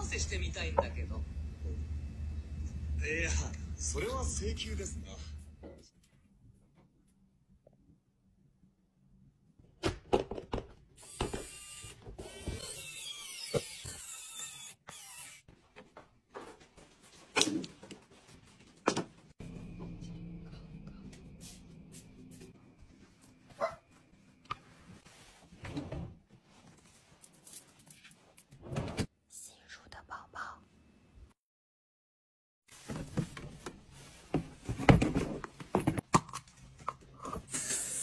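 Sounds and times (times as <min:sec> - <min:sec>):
electric screwdriver whirring: 0:11.0 - 0:15.4
person whispering: 0:29.3 - 0:30.7.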